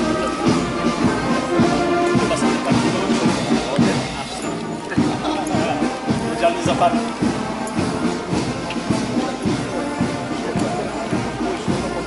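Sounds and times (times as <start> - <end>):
marching band music: 0.0 - 12.0.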